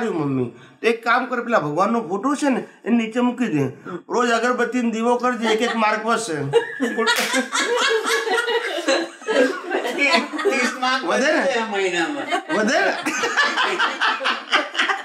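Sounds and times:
man talking and laughing: 0:05.0 - 0:14.8.

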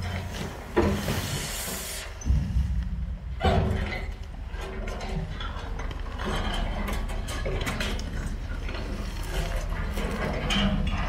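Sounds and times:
excavator engine rumbling: 0:02.2 - 0:06.9.

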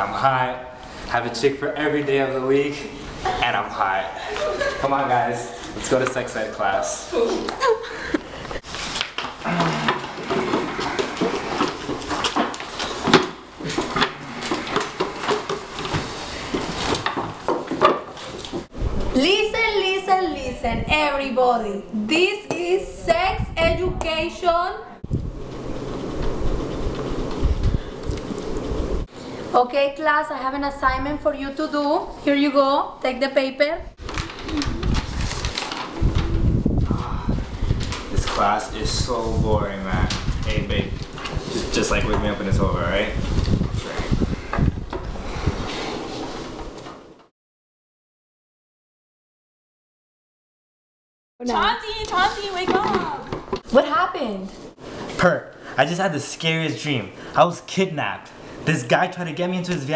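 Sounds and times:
paper rustling: 0:08.5 - 0:18.7, 0:34.0 - 0:36.6
knocks and scrapes of furniture: 0:08.6 - 0:18.8.

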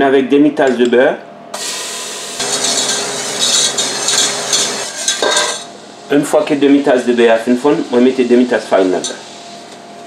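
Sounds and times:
butter sizzling in a pot: 0:01.9 - 0:05.7.

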